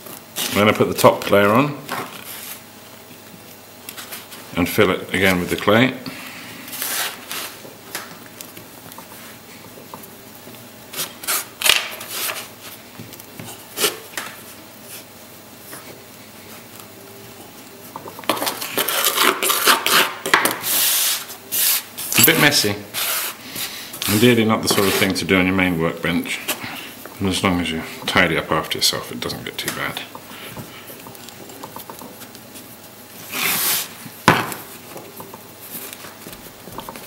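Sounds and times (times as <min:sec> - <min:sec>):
hands scraping clay on a workbench: 0:06.7 - 0:07.6, 0:10.9 - 0:12.8, 0:18.2 - 0:25.2, 0:30.3 - 0:37.0
hissing scrape: 0:33.2 - 0:34.0.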